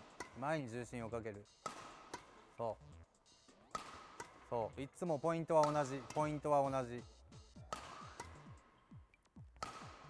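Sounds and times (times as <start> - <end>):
racket striking shuttlecock: 0.0 - 2.8, 3.5 - 10.0
faint background music: 0.0 - 10.0.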